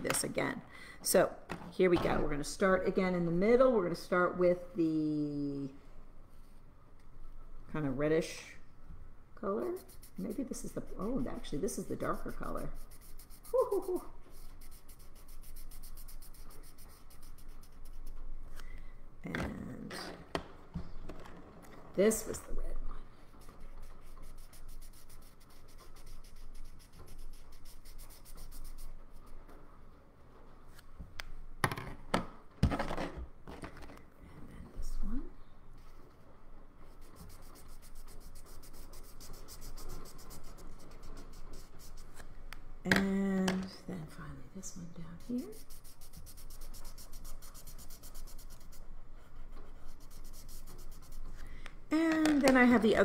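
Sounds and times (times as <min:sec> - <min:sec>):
marker scribbling on paper: 0:09.6 - 0:18.2, 0:23.4 - 0:29.3, 0:36.8 - 0:42.2, 0:45.2 - 0:51.4.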